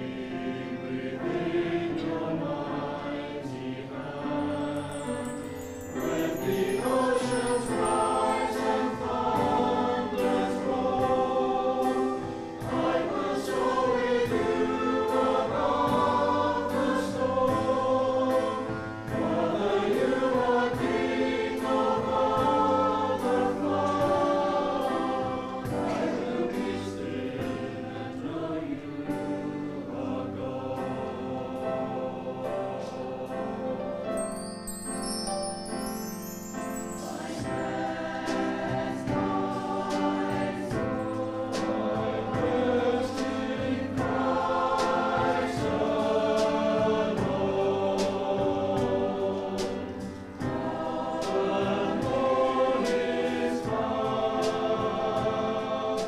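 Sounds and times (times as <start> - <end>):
choir singing in harmony: 0.0 - 56.0.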